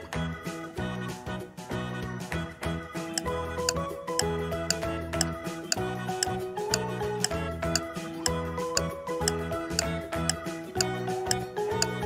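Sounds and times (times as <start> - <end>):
clock-like ticking beat: 3.2 - 12.0.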